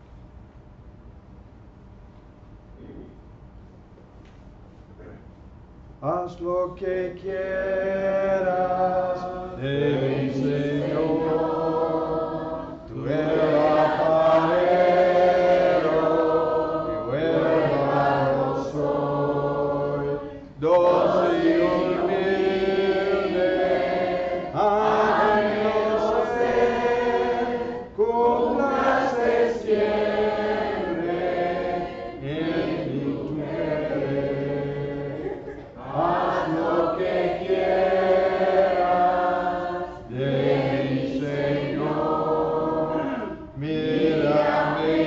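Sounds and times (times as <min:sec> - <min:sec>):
congregation singing a hymn: 0:06.1 - 0:45.0.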